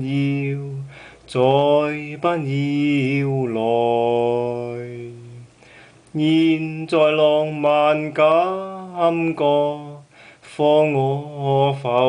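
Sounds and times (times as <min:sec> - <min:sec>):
man singing unaccompanied: 0:00.0 - 0:12.0.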